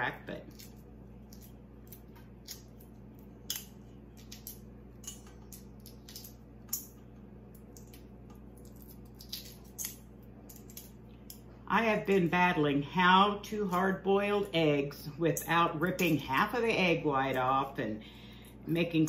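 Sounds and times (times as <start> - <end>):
eggshell crackling: 0.3 - 11.5.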